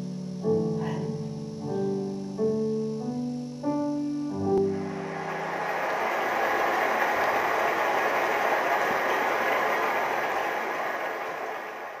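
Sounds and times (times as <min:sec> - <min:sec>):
audience applauding: 0:04.6 - 0:12.0.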